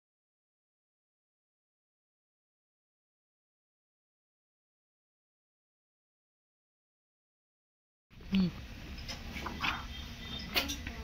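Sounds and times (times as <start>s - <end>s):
low vocal sound: 8.2s - 8.6s.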